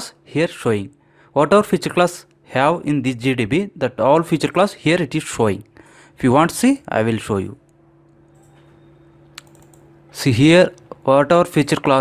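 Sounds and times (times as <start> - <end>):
faint low hum: 0.0 - 12.0
computer mouse click: 8.1 - 9.9.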